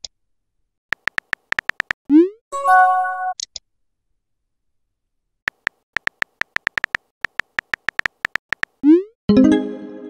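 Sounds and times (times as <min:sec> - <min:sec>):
keyboard key-tap clicks: 0:00.9 - 0:02.0, 0:05.5 - 0:08.8.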